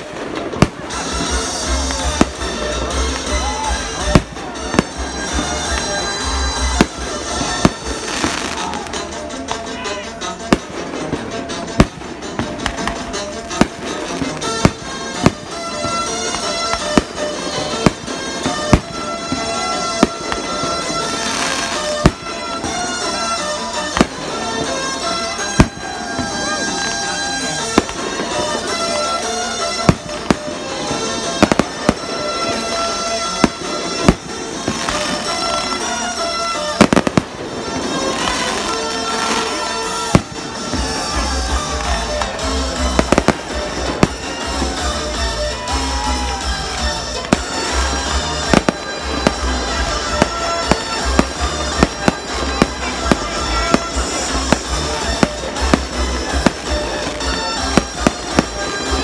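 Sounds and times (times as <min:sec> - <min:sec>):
fireworks shells bursting: 0:00.0 - 0:09.4, 0:10.4 - 0:59.0.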